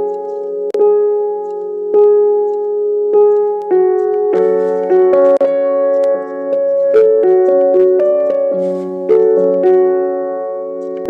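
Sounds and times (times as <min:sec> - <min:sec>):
slow solo piano: 0:00.0 - 0:11.0.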